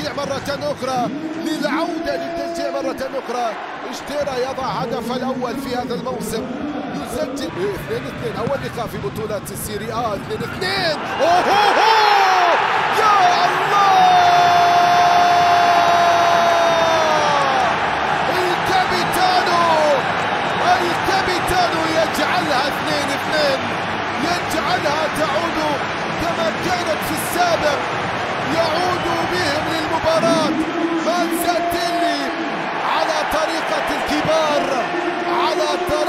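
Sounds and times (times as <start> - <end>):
stadium crowd noise: 0.0 - 36.0
man shouting in celebration: 11.1 - 20.0.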